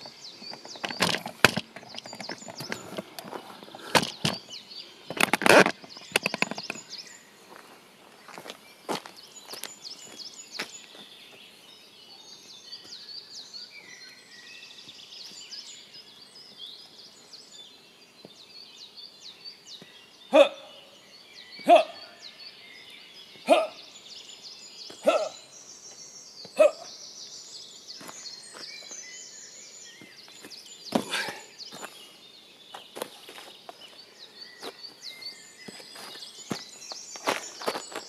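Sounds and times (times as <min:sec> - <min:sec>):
birds chirping and singing: 0:00.0 - 0:38.0
man shouting kiai: 0:20.3 - 0:20.7, 0:21.7 - 0:22.0, 0:23.5 - 0:23.8.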